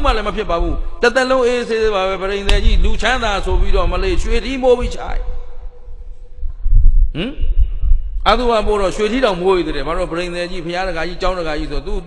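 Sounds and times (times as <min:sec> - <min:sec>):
man murmuring: 0:07.1 - 0:07.5.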